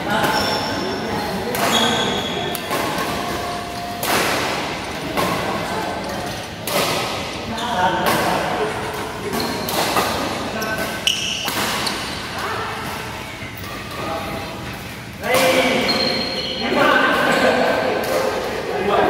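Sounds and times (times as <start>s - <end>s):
badminton rackets hitting shuttlecock: 1.5s - 7.4s, 8.0s - 12.2s.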